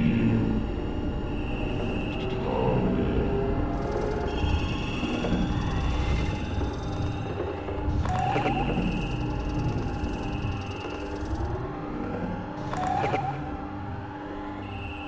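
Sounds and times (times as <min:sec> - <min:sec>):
held high electronic tones: 0:07.9 - 0:11.4, 0:12.6 - 0:13.6.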